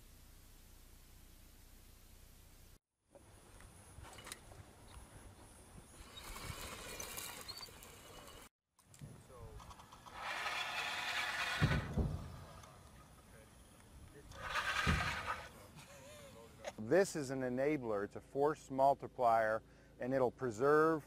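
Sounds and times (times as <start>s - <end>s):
electric motor whirring: 10.0s - 12.5s.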